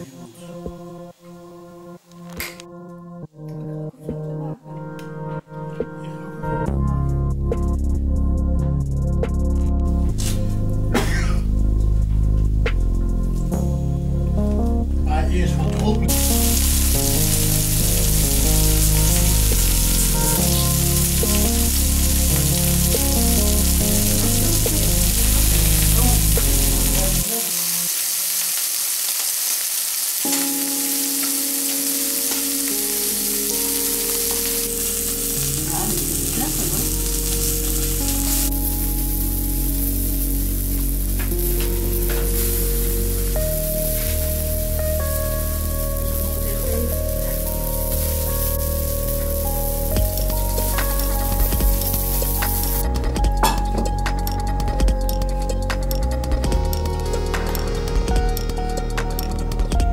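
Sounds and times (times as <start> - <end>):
music with deep bass: 0.0 - 27.4, 30.3 - 59.9
meat sizzling on griddle: 16.1 - 52.8.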